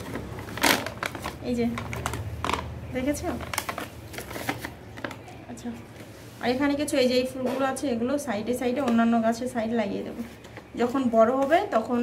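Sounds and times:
plastic bag crinkling and clicking: 0:00.0 - 0:05.4.

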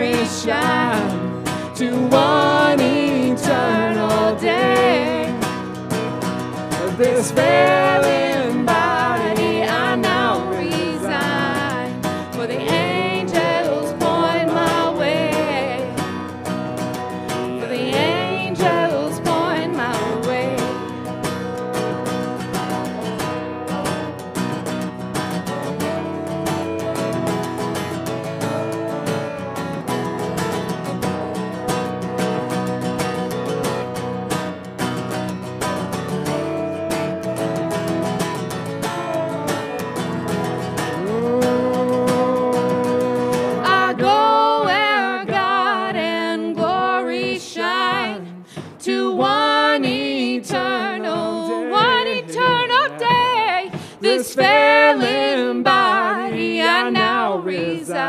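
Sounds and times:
voices singing: 0:00.0 - 0:16.3, 0:17.0 - 0:21.0, 0:36.7 - 0:58.0
worship band playing a hymn: 0:00.0 - 0:58.0.

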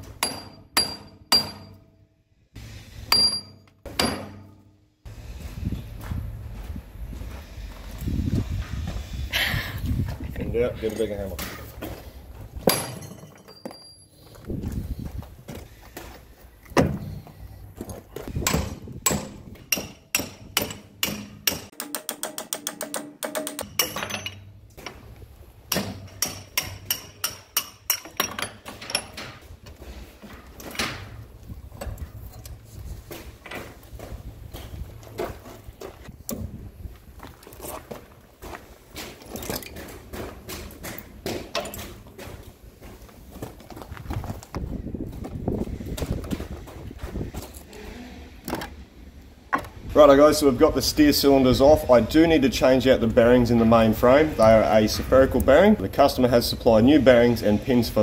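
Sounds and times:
metal clanks and knocks: 0:00.0 - 0:02.0, 0:03.1 - 0:04.8, 0:10.8 - 0:14.2, 0:16.7 - 0:36.0, 0:38.9 - 0:42.4.

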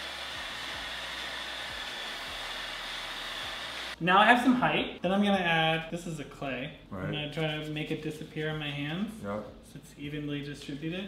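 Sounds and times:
hair dryer blowing: 0:00.0 - 0:04.0.

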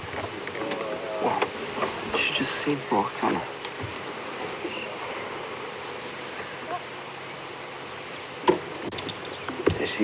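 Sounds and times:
outdoor bush ambience hiss: 0:00.0 - 0:10.0.

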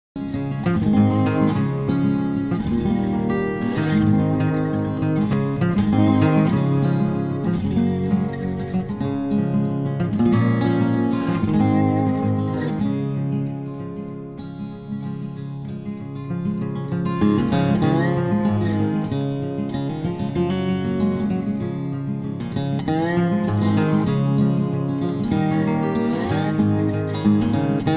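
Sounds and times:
acoustic guitar music: 0:00.2 - 0:27.9.

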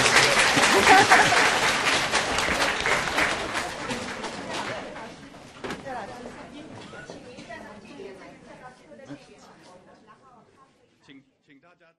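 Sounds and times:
audience applause: 0:00.0 - 0:04.7.

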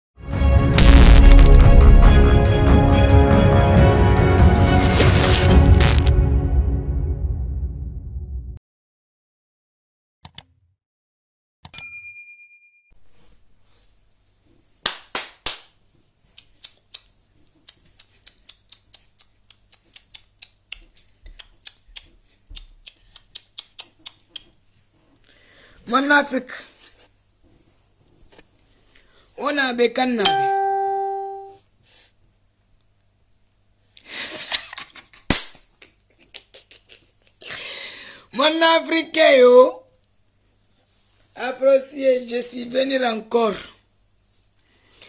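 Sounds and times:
loud cracks: 0:00.7 - 0:02.2, 0:04.8 - 0:06.1
notification chime: 0:30.2 - 0:31.6.

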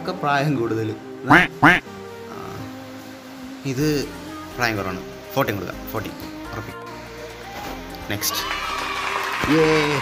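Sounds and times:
background music: 0:00.0 - 0:10.0
duck-like quacks: 0:01.3 - 0:01.9.

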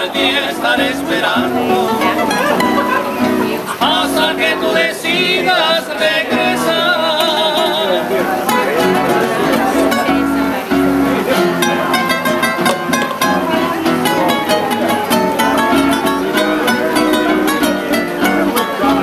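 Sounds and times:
plucked guitar lead melody: 0:00.0 - 0:19.0
rhythm guitars: 0:00.0 - 0:19.0
voices singing with vibrato: 0:00.0 - 0:19.0.

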